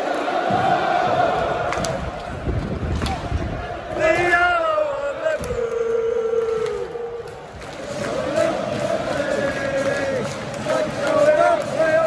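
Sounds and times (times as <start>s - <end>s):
football crowd chanting: 0.0s - 2.4s, 3.0s - 12.0s
crowd din: 0.0s - 12.0s.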